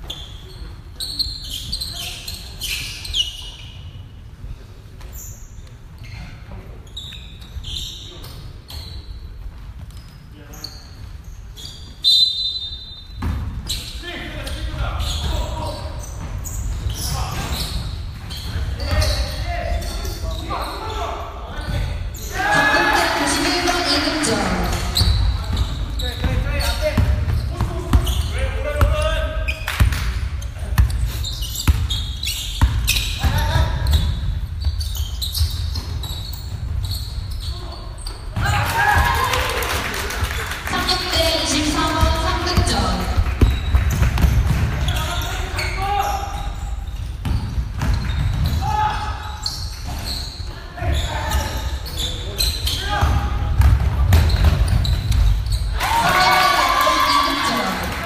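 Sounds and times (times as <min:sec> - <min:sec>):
players calling out: 0:22.2 - 0:29.6
basketball bouncing on court: 0:24.6 - 0:37.2, 0:41.6 - 0:45.4, 0:47.0 - 0:48.7, 0:52.9 - 0:55.6.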